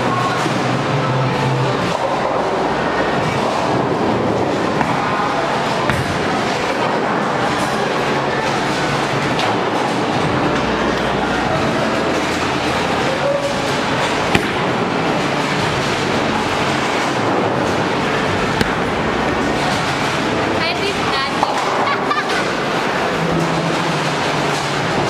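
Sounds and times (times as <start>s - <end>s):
bowling balls rolling: 1.5s - 25.0s.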